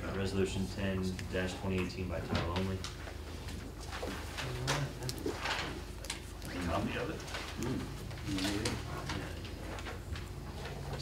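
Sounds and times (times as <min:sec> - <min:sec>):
steady electrical hum: 0:00.0 - 0:11.0
paper rustling: 0:02.3 - 0:11.0
low murmured voice: 0:07.6 - 0:09.5.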